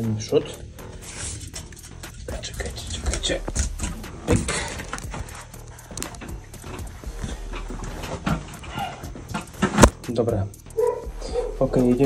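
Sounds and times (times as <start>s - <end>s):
background music: 0.0s - 12.0s
knocking and rustling handling: 1.4s - 10.0s.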